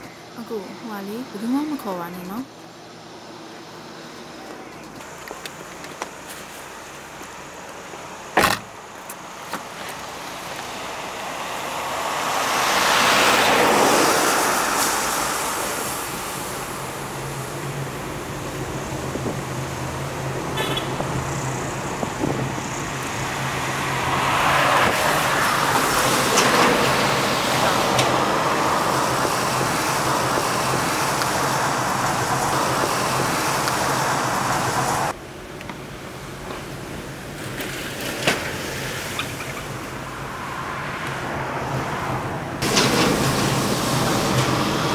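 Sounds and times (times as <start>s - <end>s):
rushes of passing traffic: 0.0s - 44.9s
tyre and engine road noise: 0.0s - 44.9s.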